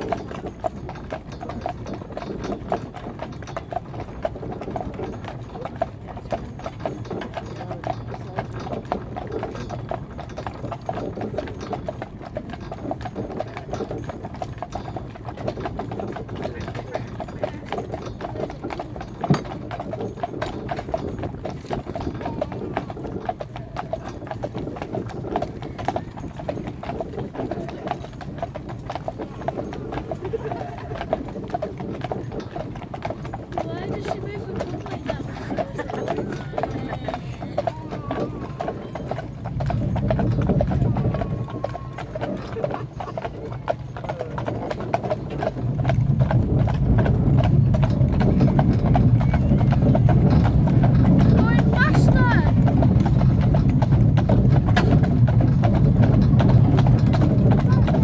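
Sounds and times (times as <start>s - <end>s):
horse hooves clip-clopping on pavement: 0.0s - 58.0s.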